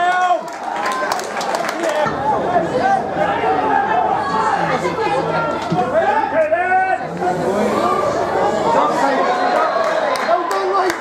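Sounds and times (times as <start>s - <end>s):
spectators talking and shouting: 0.0s - 11.0s.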